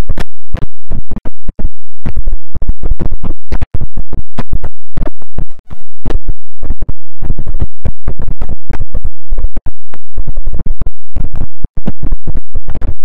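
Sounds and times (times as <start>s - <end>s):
distorted stuttering audio bursts: 0.0s - 13.0s.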